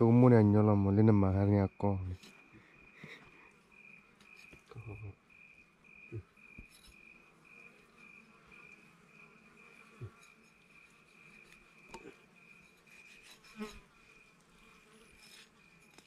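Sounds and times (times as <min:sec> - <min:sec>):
insect chirping: 0:00.0 - 0:16.0.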